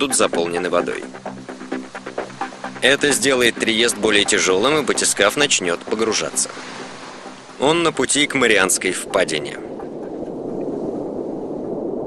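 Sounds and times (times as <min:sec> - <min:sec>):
low underwater rushing: 0:00.0 - 0:12.0.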